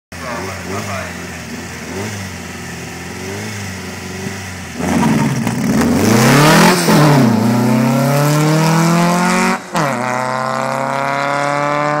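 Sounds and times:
car engine revving and accelerating: 0.2 - 12.0.

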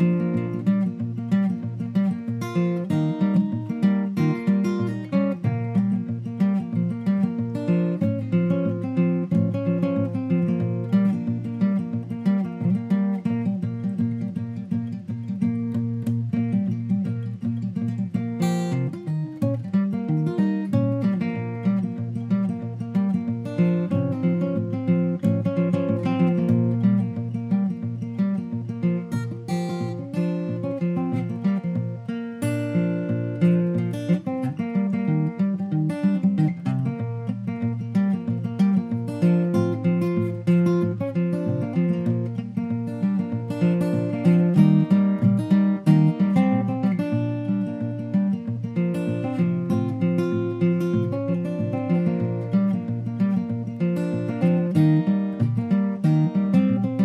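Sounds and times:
acoustic guitar strumming: 0.0 - 57.0.

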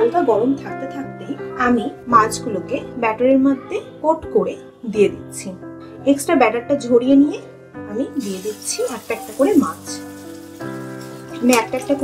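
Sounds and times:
fish frying in oil: 8.2 - 12.0.

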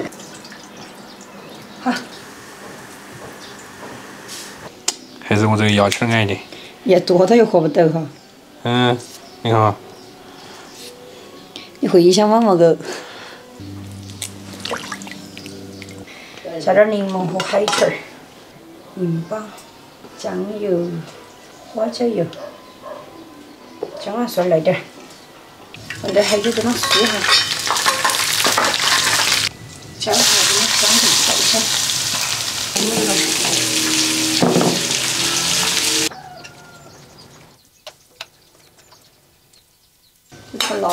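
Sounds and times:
low steady tones: 13.4 - 16.5, 32.7 - 36.1
hot oil sizzling: 13.6 - 16.1, 25.8 - 36.1
low held music note: 13.6 - 16.2, 32.8 - 36.1.

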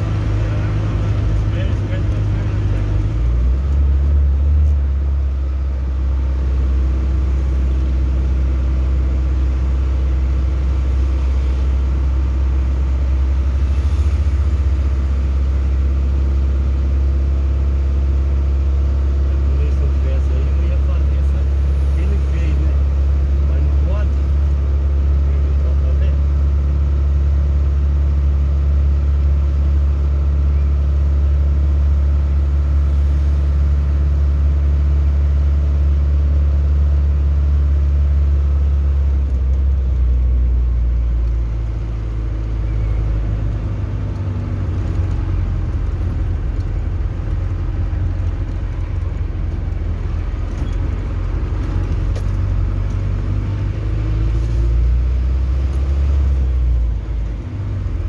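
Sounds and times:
car engine and road drone: 0.0 - 58.0.

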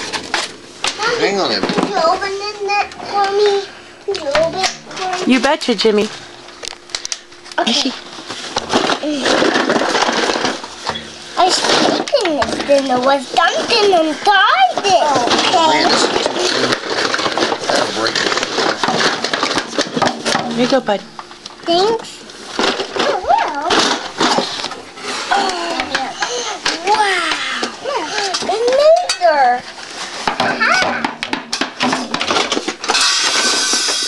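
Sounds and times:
children's voices: 25.1 - 29.6.

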